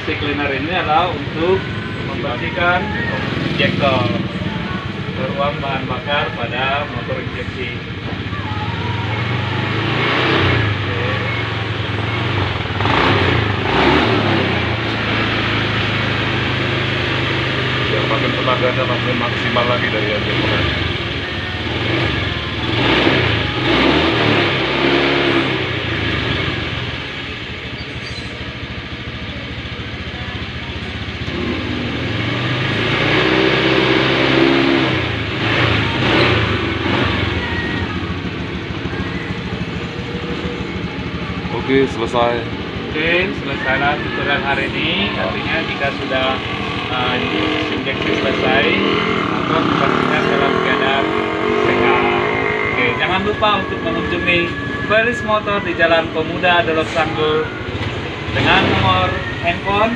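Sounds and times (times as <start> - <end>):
scooter engine running and revving: 0.0 - 59.9.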